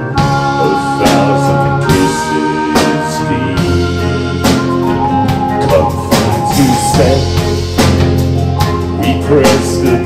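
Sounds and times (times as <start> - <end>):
bass guitar: 0.0 - 10.0
drum kit beat: 0.0 - 10.0.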